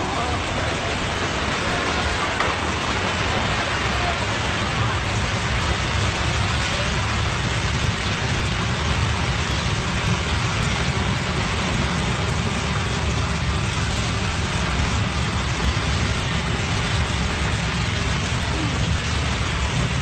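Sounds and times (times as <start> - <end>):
spray falling like downpour: 0.0 - 20.0
water jet rushing: 0.0 - 20.0.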